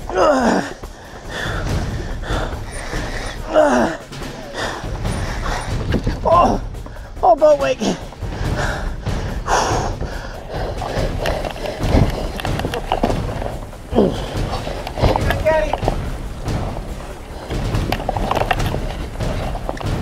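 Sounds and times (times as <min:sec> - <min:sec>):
wind and water rumble: 0:00.0 - 0:20.0.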